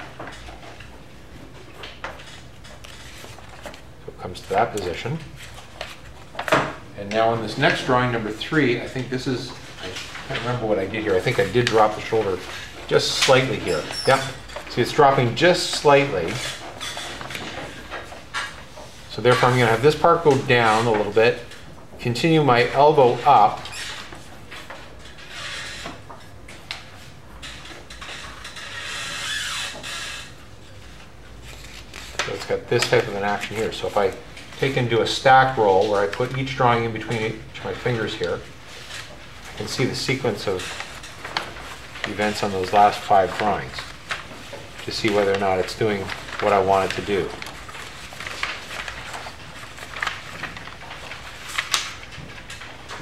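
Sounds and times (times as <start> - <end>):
paper sheets rustling and flapping: 0.0 - 53.0.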